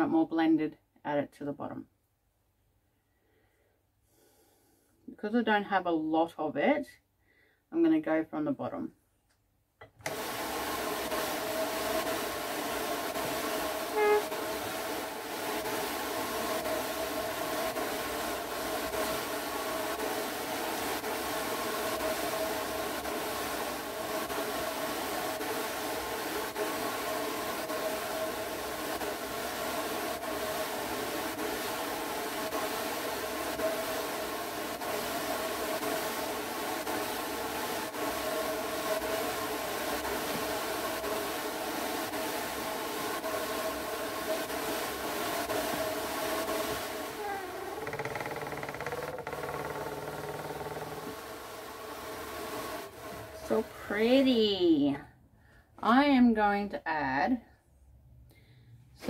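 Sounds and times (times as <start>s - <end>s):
drum carder whirring hum: 10.0s - 36.4s, 37.1s - 54.3s.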